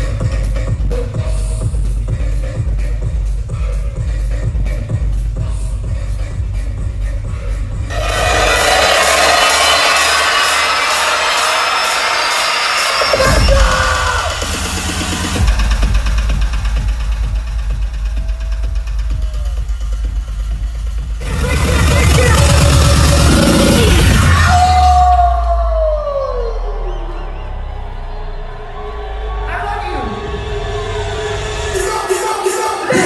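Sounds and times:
bass-heavy electronic dance music: 0:00.0 - 0:33.0.

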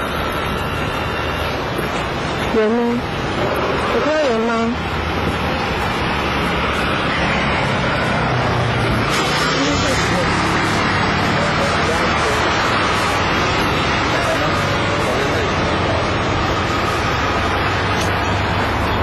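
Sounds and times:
rushing outdoor noise: 0:00.0 - 0:19.0.

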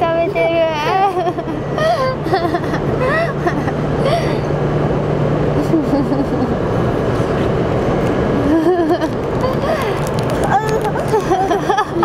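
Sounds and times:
low hum and rumble: 0:00.0 - 0:12.0.

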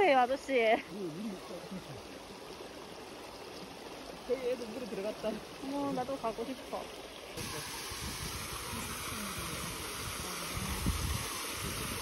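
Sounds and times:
stream trickling: 0:00.0 - 0:12.0
waterfall rushing into pool: 0:00.0 - 0:12.0.

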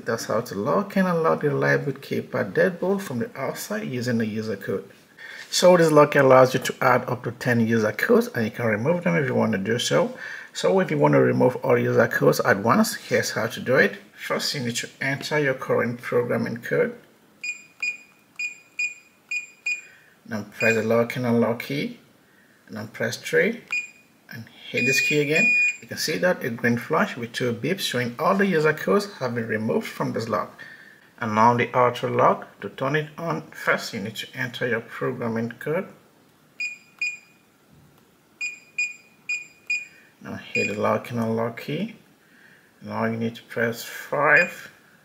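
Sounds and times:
keypad lock beeping: 0:17.4 - 0:19.9, 0:23.7 - 0:24.0, 0:36.6 - 0:37.4, 0:38.4 - 0:40.0.

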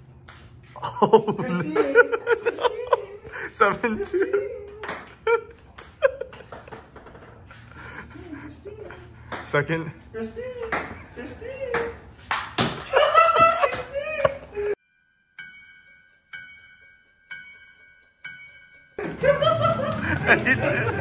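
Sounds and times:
laughter: 0:00.8 - 0:06.7, 0:12.8 - 0:14.8, 0:19.0 - 0:21.0.

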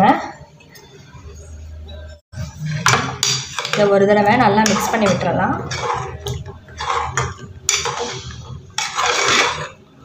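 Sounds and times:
metal spoon clinking on steel pot: 0:02.8 - 0:09.8.

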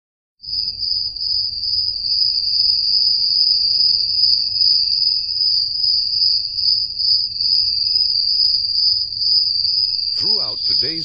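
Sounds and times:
insect high-pitched trill: 0:00.5 - 0:11.0.

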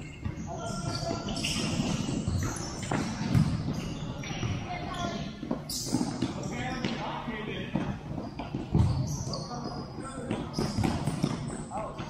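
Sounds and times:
ball kicked and bouncing: 0:00.1 - 0:04.6, 0:07.6 - 0:09.4, 0:10.2 - 0:12.0.

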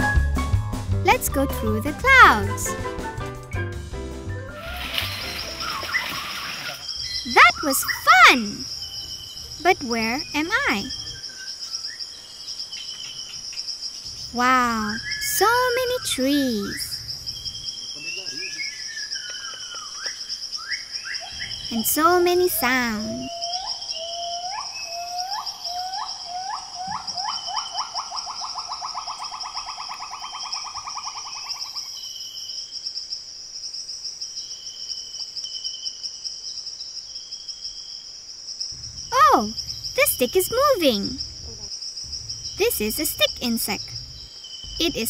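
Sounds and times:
bird whistling calls: 0:04.4 - 0:09.1
insect chorus drone: 0:04.6 - 0:45.0
faint bird chirps: 0:04.7 - 0:32.7, 0:38.8 - 0:45.0.

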